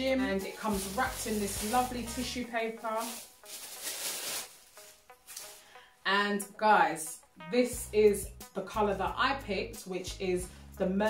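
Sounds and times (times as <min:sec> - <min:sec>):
tissue paper rustling: 0:00.0 - 0:05.7
soft background music: 0:00.0 - 0:11.0.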